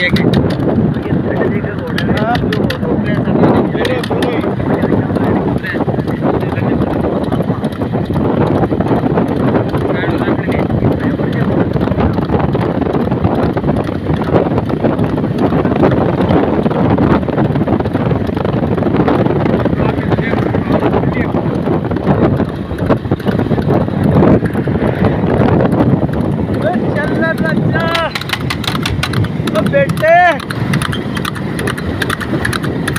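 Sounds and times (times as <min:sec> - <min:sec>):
motorcycle running: 0:00.0 - 0:32.9
road noise: 0:00.0 - 0:32.9
wind buffeting microphone: 0:00.0 - 0:32.9.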